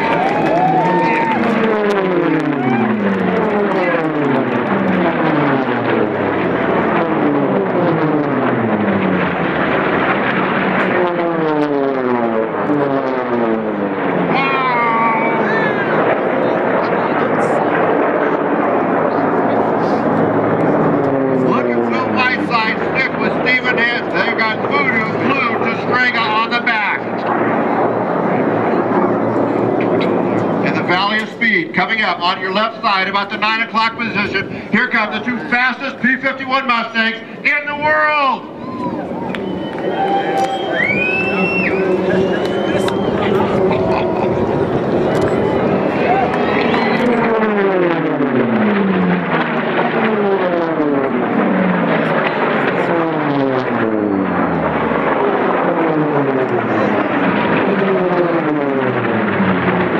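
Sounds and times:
propeller planes passing low: 0.0 - 59.9.

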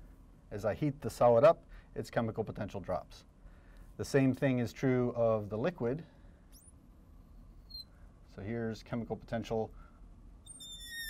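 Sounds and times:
marker squeaking on glass: 6.5 - 6.8, 7.6 - 8.0, 10.4 - 11.0.

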